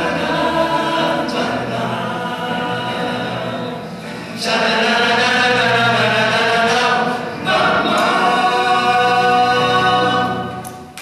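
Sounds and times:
male choir singing a cappella: 0.0 - 10.7.

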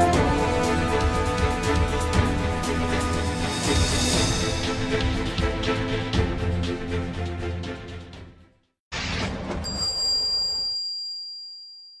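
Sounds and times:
high bell-like ding: 9.6 - 12.0.

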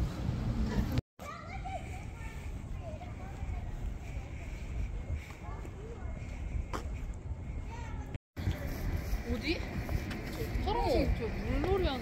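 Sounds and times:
distant children playing: 1.2 - 9.2.

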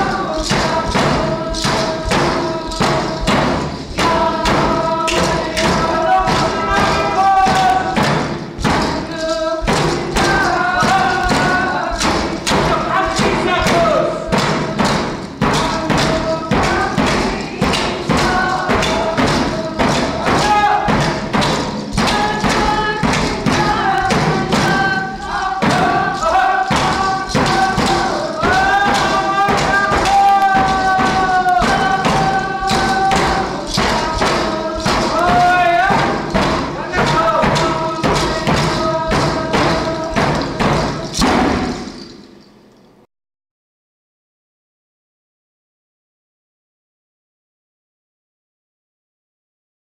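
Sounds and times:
drum beating steadily: 0.0 - 42.4
singing voices: 0.0 - 42.6.

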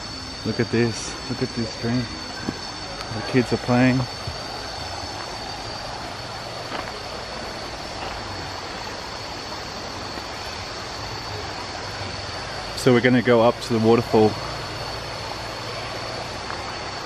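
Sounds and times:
high-pitched tone: 0.0 - 9.1
stream running over rocks: 2.4 - 17.0.

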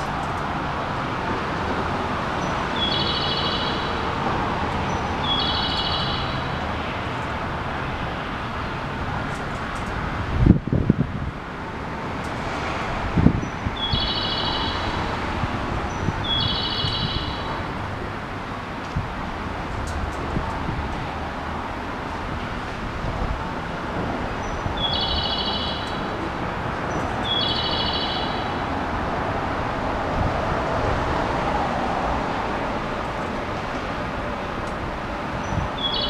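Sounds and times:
outdoor background noise: 0.0 - 36.0
short chirping calls: 2.7 - 3.9, 4.9 - 6.4, 13.8 - 14.8, 15.9 - 17.5, 24.5 - 26.1, 27.2 - 28.6, 35.4 - 36.0.

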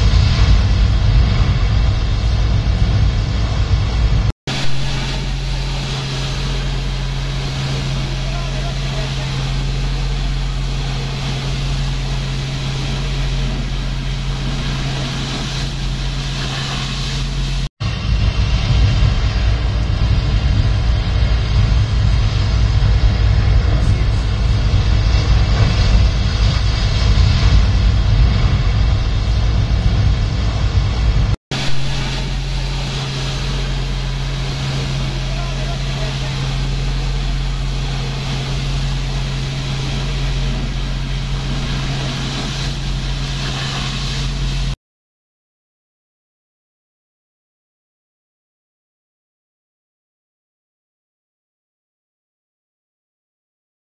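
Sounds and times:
pump engine running: 0.0 - 44.8
water cannon hissing: 0.0 - 44.8.

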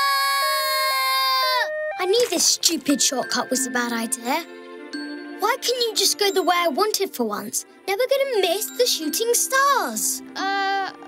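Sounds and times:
cartoon wailing cry: 10.4 - 11.0.

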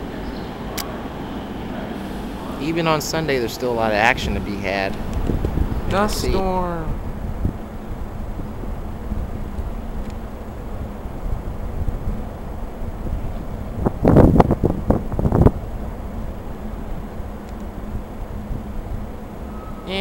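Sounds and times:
strong wind buffeting microphone: 0.0 - 20.0.

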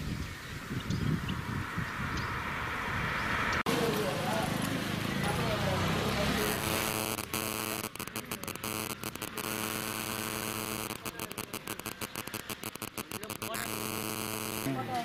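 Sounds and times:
electrical buzz: 6.3 - 15.0.

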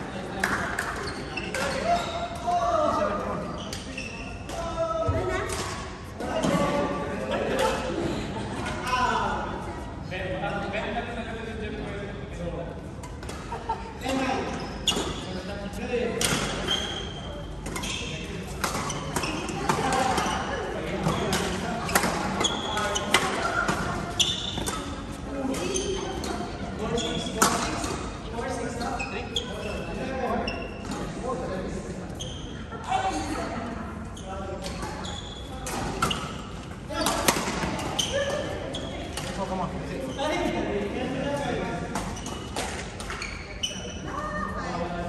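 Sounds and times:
shoes squeaking on sports floor: 0.8 - 4.8, 14.1 - 15.6, 16.3 - 31.1, 32.1 - 33.4, 34.1 - 40.5, 42.0 - 44.5
badminton rackets hitting shuttlecock: 18.6 - 26.3.

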